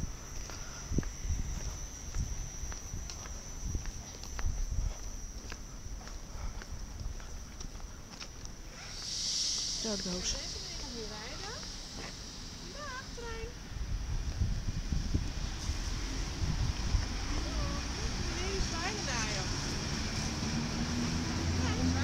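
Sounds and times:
footsteps on concrete: 0.3s - 12.2s
hiss: 8.7s - 21.5s
electric train whining: 9.0s - 22.0s.

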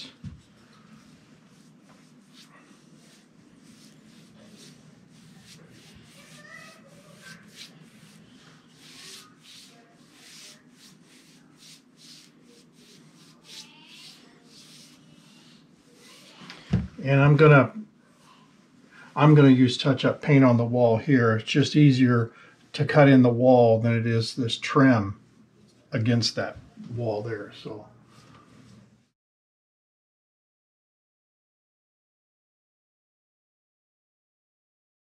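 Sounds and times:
paintbrush swishes: 0.0s - 16.7s.

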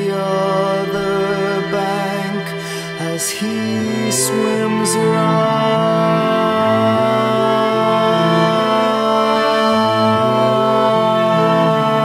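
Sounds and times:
string quartet playing slowly: 0.0s - 12.0s.

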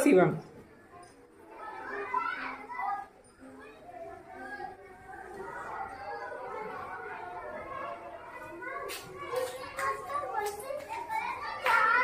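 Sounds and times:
children chattering quietly: 0.0s - 12.0s.

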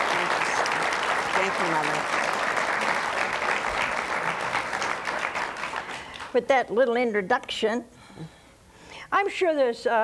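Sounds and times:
audience applauding: 0.0s - 6.4s.

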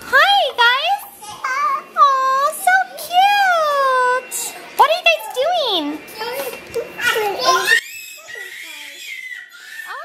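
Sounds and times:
toddler babbling: 6.2s - 10.0s.

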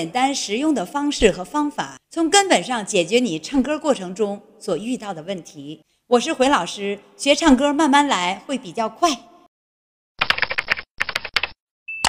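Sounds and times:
rapid keyboard key clicks: 10.2s - 11.6s.

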